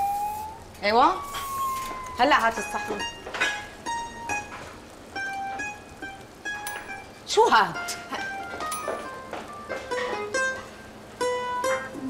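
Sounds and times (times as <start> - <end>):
plucked string melody: 1.2 - 12.0.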